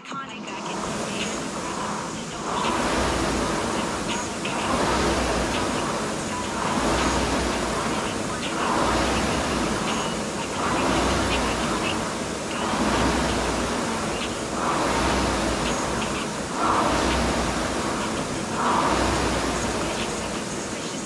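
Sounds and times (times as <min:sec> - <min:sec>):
rowing machine fan whooshing: 0:00.1 - 0:21.0.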